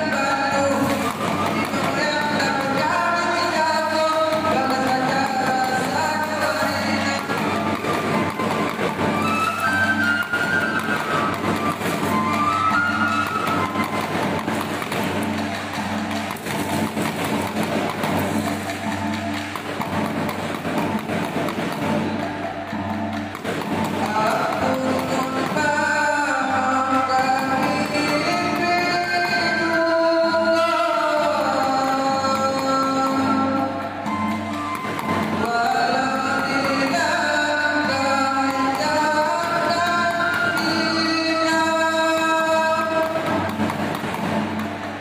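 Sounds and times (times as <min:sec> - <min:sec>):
melody over steady percussion: 0:00.0 - 0:45.0.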